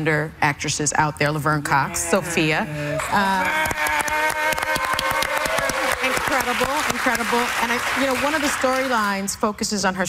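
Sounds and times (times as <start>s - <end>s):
person cheering: 2.0s - 6.2s
audience clapping: 2.9s - 9.4s.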